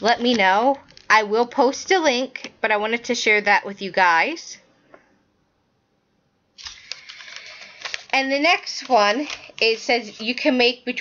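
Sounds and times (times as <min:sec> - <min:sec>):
notepaper rustling: 0:06.6 - 0:11.0.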